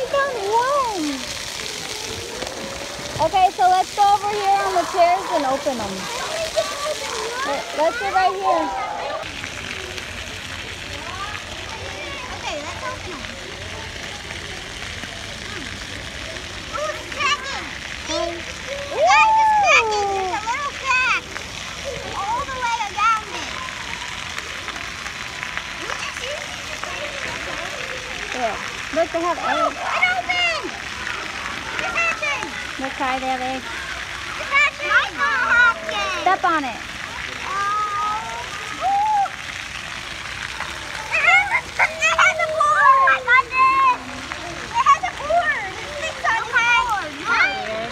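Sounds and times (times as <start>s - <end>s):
children's voices: 0.0s - 47.9s
fountain water running: 0.0s - 47.9s.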